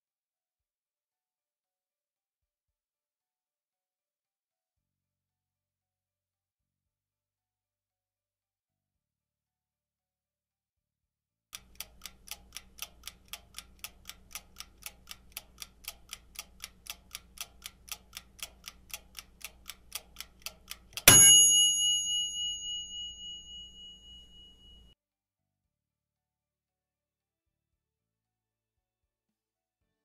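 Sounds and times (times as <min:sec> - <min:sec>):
clock ticking: 0:11.6 - 0:24.2
loud bell ring: 0:21.1 - 0:25.0.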